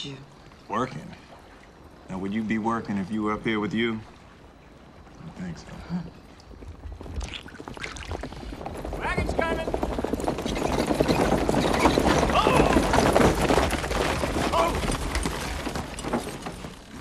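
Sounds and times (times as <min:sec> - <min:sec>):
hooves clopping: 0:06.1 - 0:17.0
wooden wheels and harness rattling: 0:06.4 - 0:17.0.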